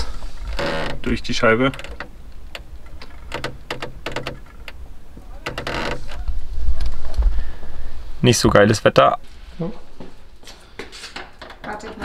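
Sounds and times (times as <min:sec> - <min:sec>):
low rumble: 0:06.0 - 0:08.2.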